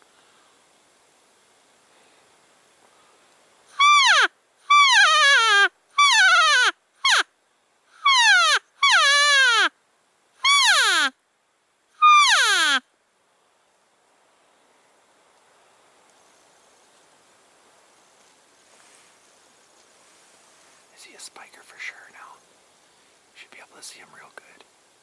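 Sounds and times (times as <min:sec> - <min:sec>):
elk call mews: 0:03.7 - 0:07.2, 0:08.0 - 0:09.7, 0:12.0 - 0:12.8.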